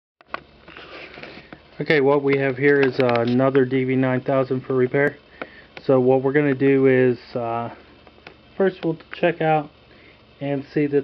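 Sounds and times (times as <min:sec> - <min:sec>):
man speaking: 0:01.8 - 0:05.2, 0:05.8 - 0:07.8, 0:08.6 - 0:09.8, 0:10.4 - 0:11.0.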